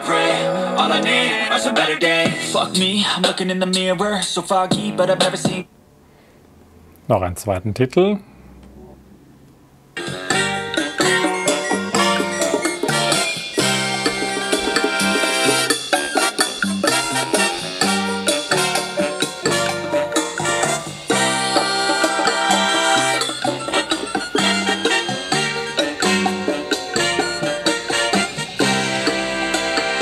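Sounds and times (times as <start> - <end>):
music through small radio speaker: 0.0 - 5.7, 10.0 - 30.0.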